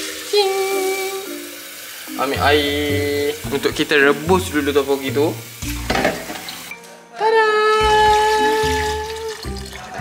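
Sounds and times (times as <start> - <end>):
water pouring into a wok: 0.0 - 6.7, 7.7 - 10.0.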